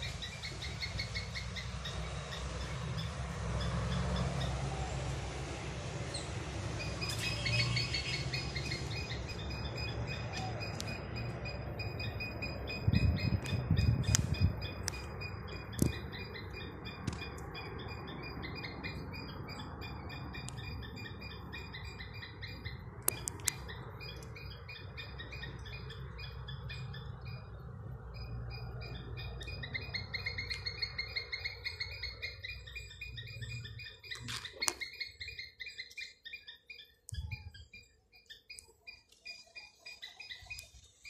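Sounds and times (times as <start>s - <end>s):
squirrel chirping: 0.0s - 4.6s, 6.1s - 41.0s
sharp clicks: 23.0s - 24.4s.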